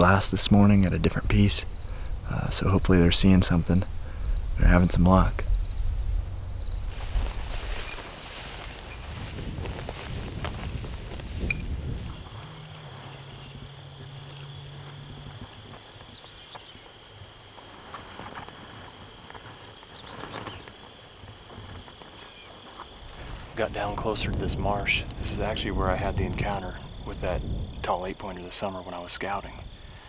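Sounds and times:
low rumbling wind: 0.0 - 22.0, 22.9 - 28.8, 29.4 - 30.0
insects trilling: 0.0 - 30.0.

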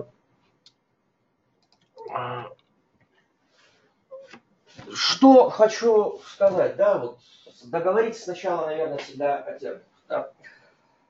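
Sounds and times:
faint clicks: 1.6 - 3.1
man speaking: 4.8 - 10.4.

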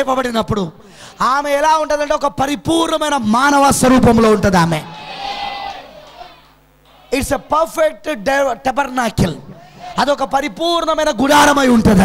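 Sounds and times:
faint hiss and room noise: 0.0 - 12.0.

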